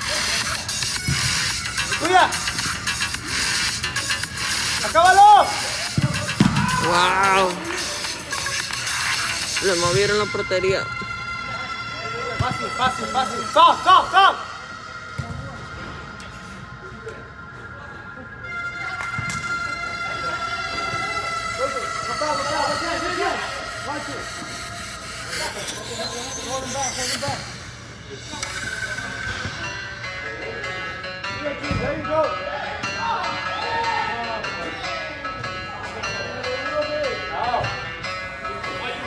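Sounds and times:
people shouting: 0:05.0 - 0:07.5.

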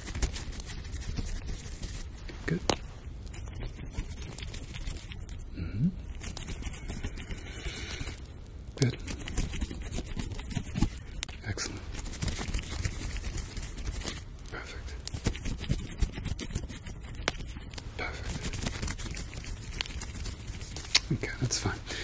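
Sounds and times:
scratchy rubbing and crackling: 0:00.0 - 0:22.0.

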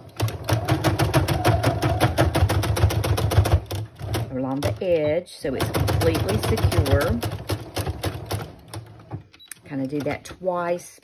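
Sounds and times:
sewing machine stitching: 0:00.0 - 0:10.8.

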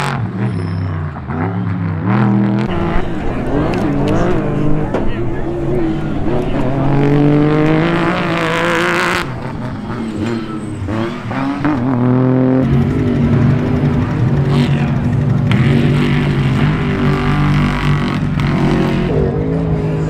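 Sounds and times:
truck engine revving: 0:00.0 - 0:20.0.

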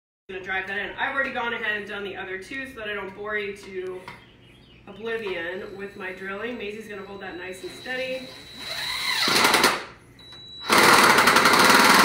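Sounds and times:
impact driver hammering screw: 0:08.6 - 0:09.9, 0:10.6 - 0:12.0.

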